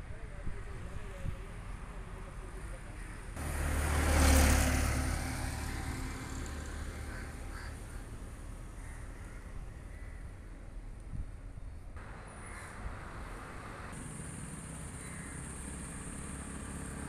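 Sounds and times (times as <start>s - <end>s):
outdoor background noise: 0.0s - 17.0s
vehicle passing by: 3.4s - 8.8s, 12.0s - 17.0s.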